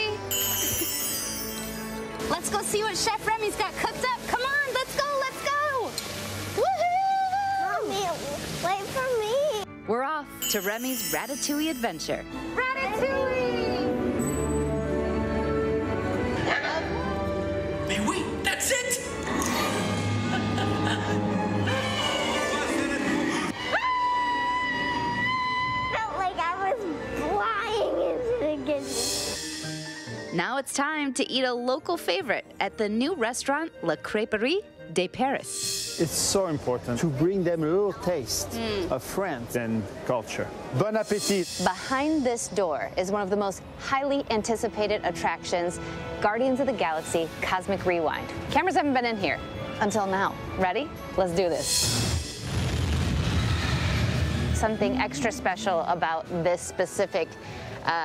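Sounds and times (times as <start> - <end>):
film music score: 12.1 - 30.6
deep cinematic rumble: 52.2 - 55.9.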